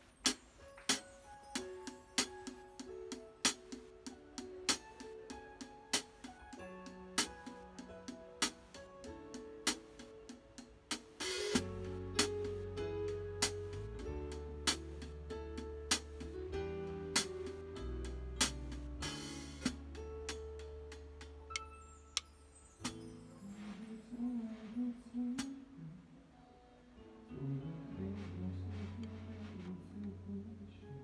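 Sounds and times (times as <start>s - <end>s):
guitar: 11.2s - 31.0s
bass line: 11.4s - 21.7s, 27.4s - 30.8s.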